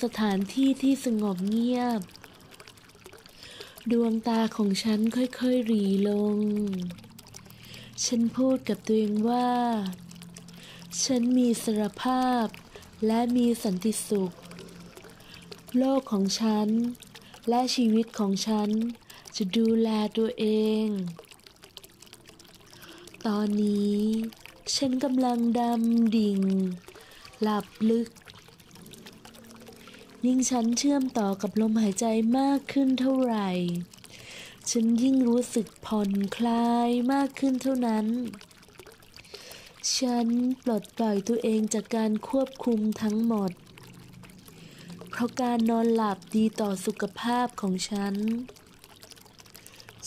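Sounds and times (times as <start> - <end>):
faint background hum: 0.0 - 50.0
soft steady background tone: 0.0 - 50.0
trickling water: 0.0 - 50.0.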